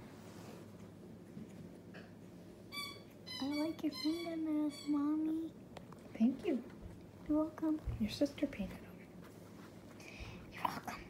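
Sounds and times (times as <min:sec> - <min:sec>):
soft whispering: 0:10.0 - 0:11.0.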